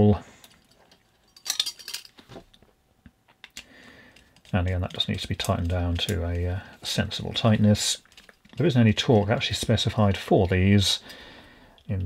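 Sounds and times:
small metal parts clinking: 0:00.4 - 0:02.3.

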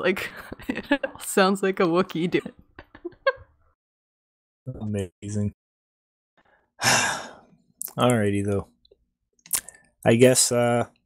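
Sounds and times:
person sighing: 0:06.8 - 0:07.4.

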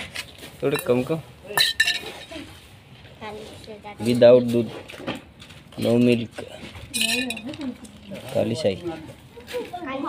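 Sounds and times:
metal utensils clinking: 0:00.6 - 0:02.4, 0:06.9 - 0:08.2.

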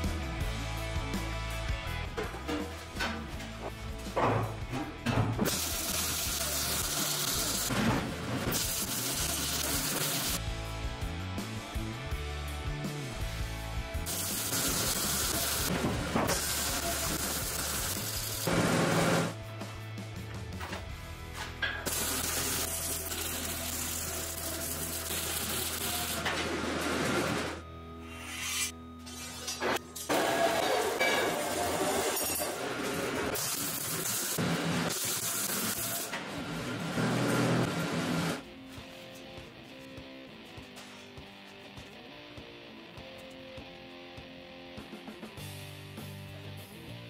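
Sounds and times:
background music: 0:00.0 - 0:47.0
welding arc sizzling: 0:05.5 - 0:10.4, 0:14.0 - 0:19.4, 0:21.8 - 0:39.8.

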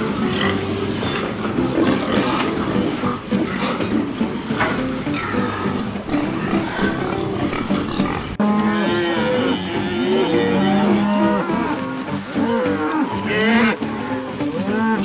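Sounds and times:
cattle mooing: 0:00.0 - 0:15.0
pig barn noise: 0:00.0 - 0:15.0.

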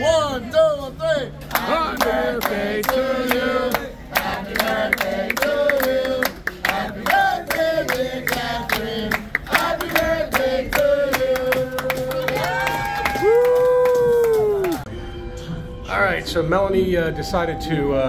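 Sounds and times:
group singing: 0:01.5 - 0:12.5
hands clapping a steady beat: 0:01.5 - 0:14.9.

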